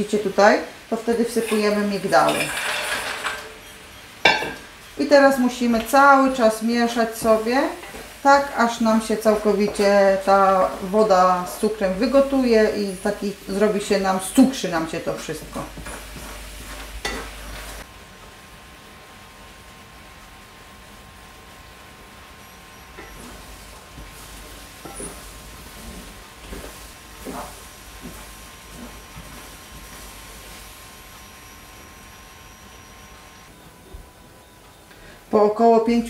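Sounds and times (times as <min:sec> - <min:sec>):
syrup sizzling in a frying pan: 0:00.0 - 0:33.5
wooden spatula scraping a pan: 0:01.0 - 0:04.6, 0:14.6 - 0:17.9, 0:22.8 - 0:31.6.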